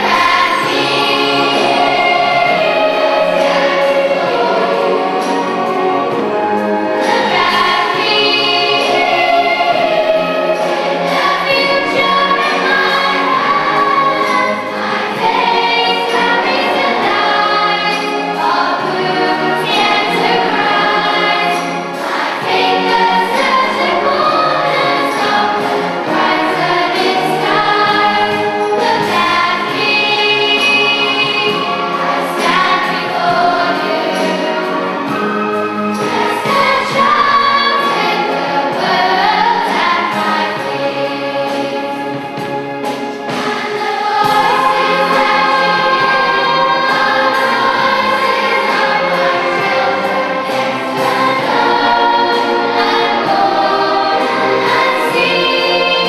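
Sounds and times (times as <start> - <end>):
children's choir singing: 0.0 - 56.0
orchestra playing: 0.0 - 56.0.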